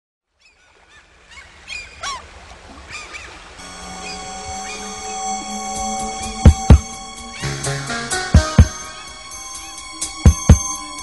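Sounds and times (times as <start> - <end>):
water birds calling: 0.2 - 11.0
music with long held tones: 3.6 - 11.0.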